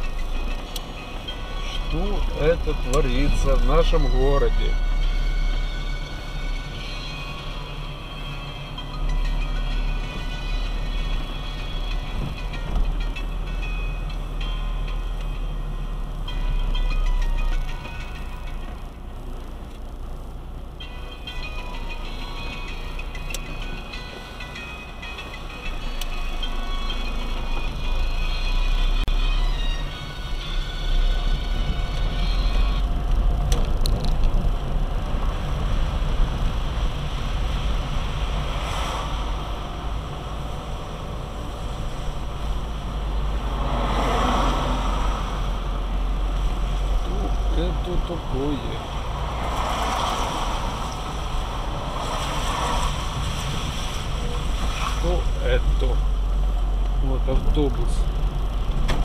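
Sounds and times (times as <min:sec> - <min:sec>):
music playing: 0:00.0 - 0:19.4, 0:20.8 - 0:33.5
car engine and tyres rumbling: 0:00.0 - 0:59.0.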